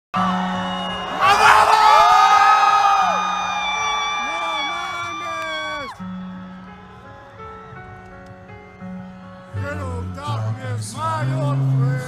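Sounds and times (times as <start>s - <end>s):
crowd noise: 0.1s - 12.0s.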